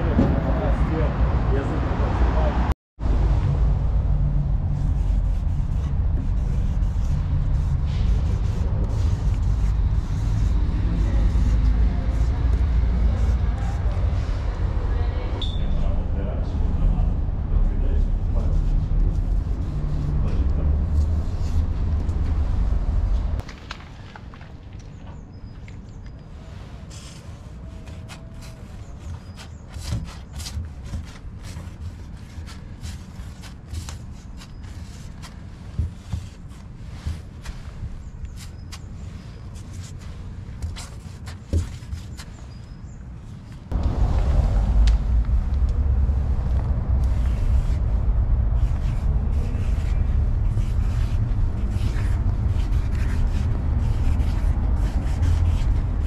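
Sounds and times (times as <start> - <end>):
loud low rumble: 0.0 - 23.4, 43.7 - 56.0
outdoor ambience: 0.0 - 56.0
marker writing on plastic: 4.7 - 14.6, 26.8 - 42.8, 48.6 - 56.0.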